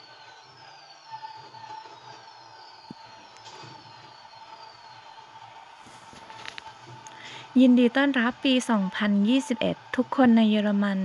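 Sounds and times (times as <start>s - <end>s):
falling firework whistles: 0.1s - 6.6s.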